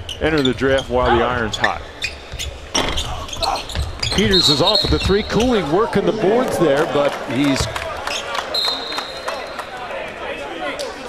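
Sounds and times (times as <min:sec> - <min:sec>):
shoe squeaks on hardwood court: 0:00.0 - 0:05.7.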